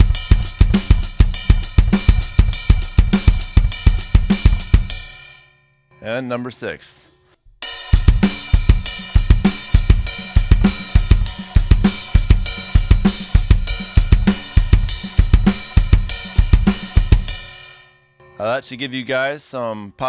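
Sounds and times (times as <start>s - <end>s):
drum kit funk groove: 0.0s - 5.2s, 7.6s - 17.7s.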